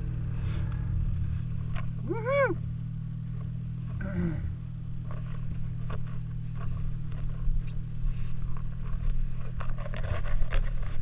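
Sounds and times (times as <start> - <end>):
snowmobile engine idling: 0.0 - 11.0
loud vocal call: 2.0 - 2.7.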